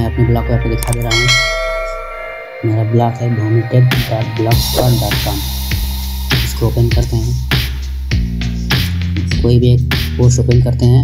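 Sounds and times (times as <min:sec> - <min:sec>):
bell ding: 0:00.8 - 0:07.9.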